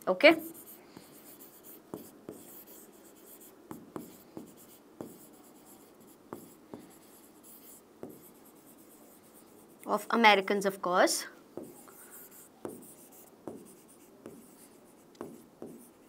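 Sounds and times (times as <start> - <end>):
writing scratches on a board: 0.4 - 9.8, 11.6 - 16.0.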